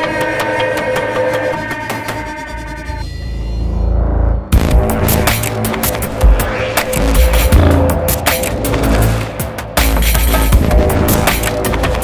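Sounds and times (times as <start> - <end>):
electronic music with heavy bass: 0.0 - 12.0.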